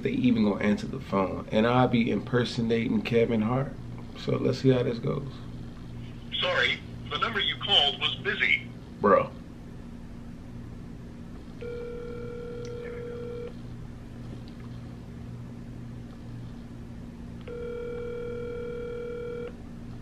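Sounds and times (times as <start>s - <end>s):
telephone ringback tone: 11.6s - 13.5s, 17.5s - 19.5s.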